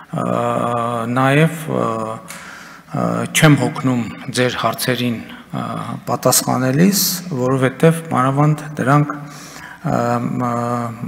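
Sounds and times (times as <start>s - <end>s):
man speaking into microphone: 0.0s - 11.0s.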